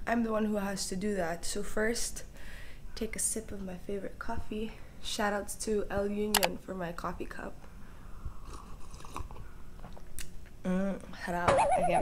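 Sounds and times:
person sipping and swallowing: 0:08.3 - 0:09.5.

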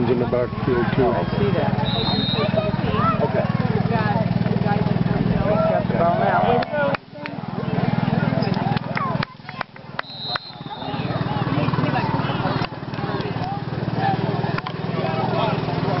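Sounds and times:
spectators chattering: 0:00.0 - 0:16.0.

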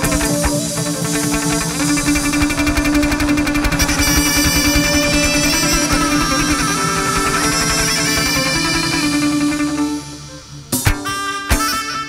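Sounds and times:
fast percussion beat: 0:00.0 - 0:10.0
held tone: 0:00.0 - 0:11.1
plucked strings: 0:00.0 - 0:11.7.

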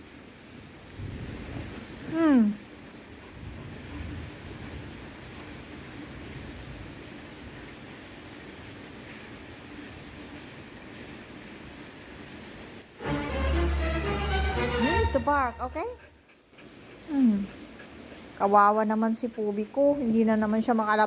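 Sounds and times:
heavy rain hiss: 0:00.0 - 0:21.0.

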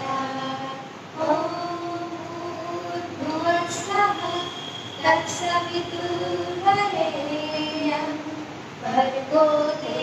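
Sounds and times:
woman chanting a prayer: 0:00.0 - 0:10.0.

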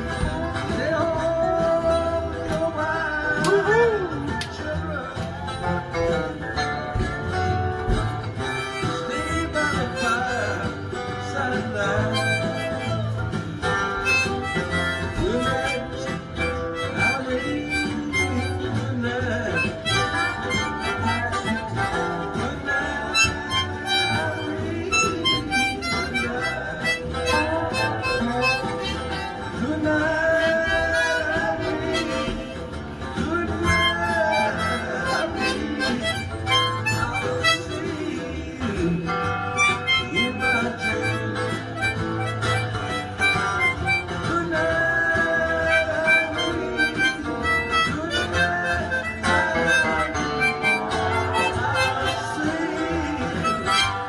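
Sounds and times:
harmonica playing bent notes: 0:05.6 - 0:54.0.

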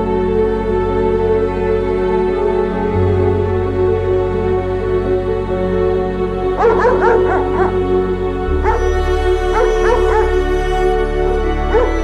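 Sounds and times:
background music: 0:00.0 - 0:12.0
dog whimpering: 0:09.6 - 0:10.3.

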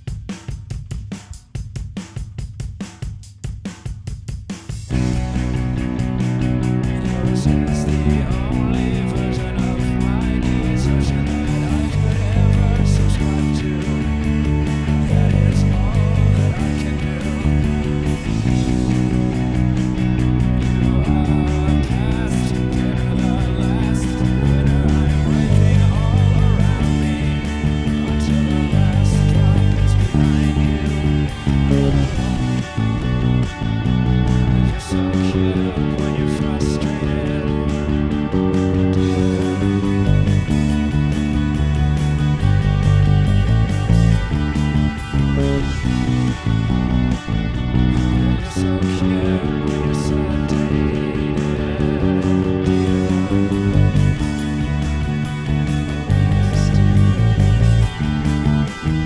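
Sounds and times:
rock band recording: 0:00.0 - 0:59.0
electric bass playing: 0:04.7 - 0:59.0.

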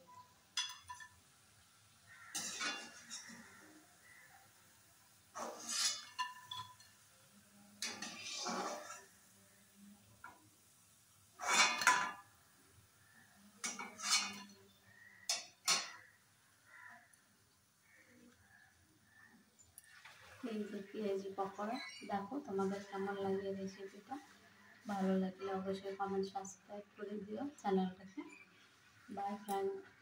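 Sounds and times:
metal spoon scraping a pan: 0:00.1 - 0:01.2, 0:02.1 - 0:04.3, 0:05.3 - 0:07.0, 0:07.7 - 0:10.4, 0:11.4 - 0:12.3, 0:13.6 - 0:16.2.

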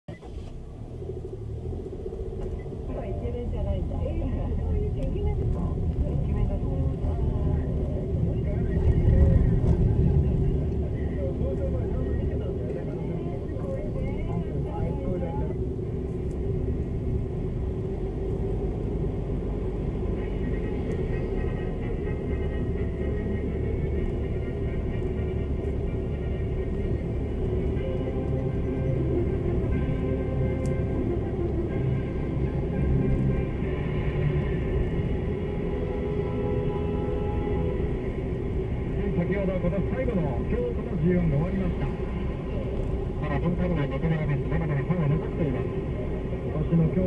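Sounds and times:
car engine and road rumble: 0:00.0 - 0:47.0.

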